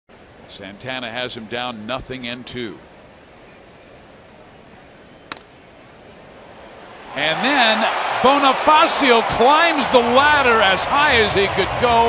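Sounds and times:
wooden bat cracking on ball: 5.3 - 5.6
crowd hum: 6.0 - 12.0.

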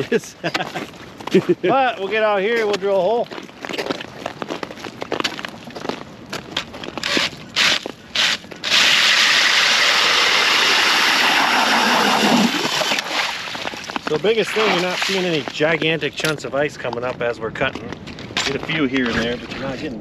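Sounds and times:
drill auger grinding through ice: 7.0 - 13.4.

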